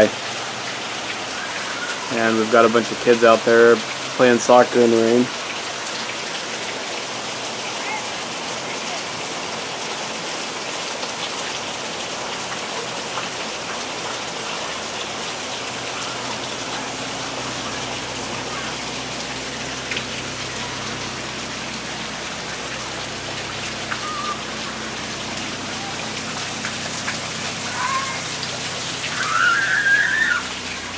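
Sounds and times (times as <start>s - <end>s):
rain falling: 0.0s - 30.9s
faint voice: 7.6s - 9.1s.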